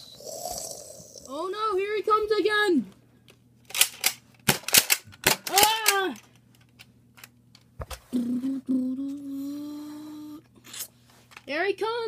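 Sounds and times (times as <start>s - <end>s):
boy humming groan: 0.0s - 1.4s, 8.1s - 10.5s.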